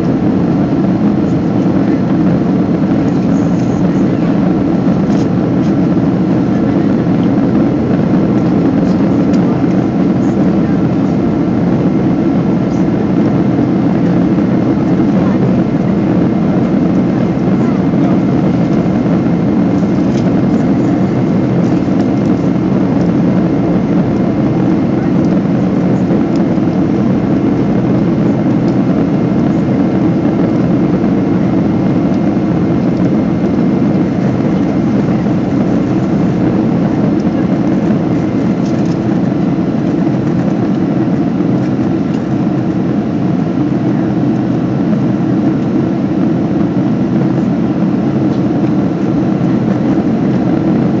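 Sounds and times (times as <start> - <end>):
airplane cabin engine rumble: 0.0 - 51.0.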